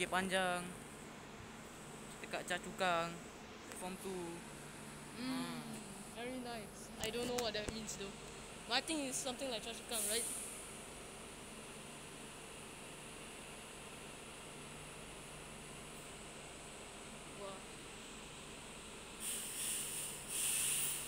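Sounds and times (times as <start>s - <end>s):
station low hum: 0.0s - 19.2s
short bursts of hiss: 10.0s - 10.6s, 19.2s - 21.0s.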